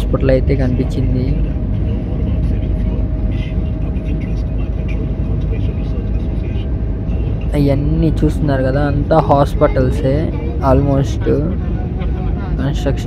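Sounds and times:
engine and tyre rumble: 0.0 - 13.0.

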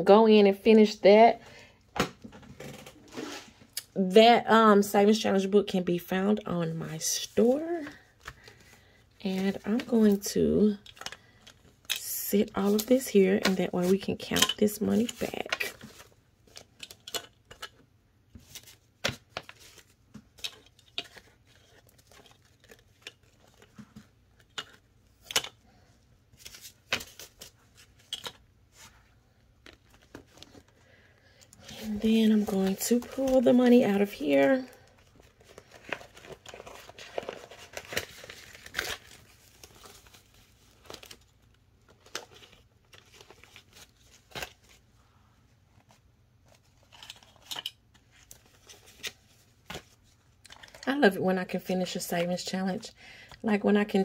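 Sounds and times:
paper banknotes rustling: 18.4 - 44.9.

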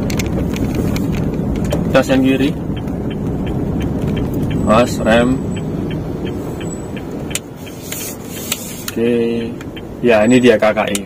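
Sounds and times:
car engine and tyre noise: 0.0 - 11.0
light even ticking: 1.0 - 11.0
sharp clicks: 5.6 - 7.8.

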